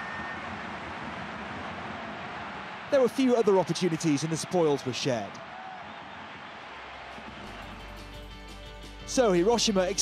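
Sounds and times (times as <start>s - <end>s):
background music with held notes: 7.3s - 10.0s.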